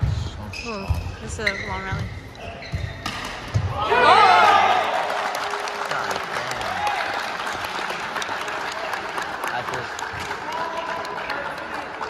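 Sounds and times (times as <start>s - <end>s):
crowd applause: 4.0s - 12.0s.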